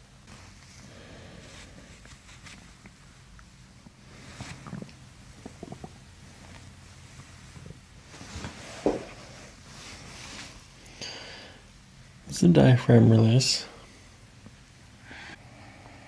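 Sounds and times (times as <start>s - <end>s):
abdominal gurgles and crackles: 4.1s - 6.8s.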